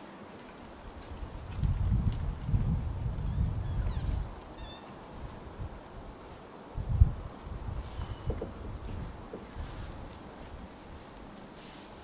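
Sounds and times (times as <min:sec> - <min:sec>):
high-pitched animal call: 0:03.7 - 0:05.0.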